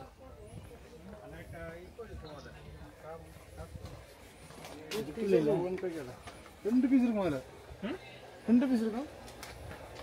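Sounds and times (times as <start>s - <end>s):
faint people talking: 0.0s - 10.0s.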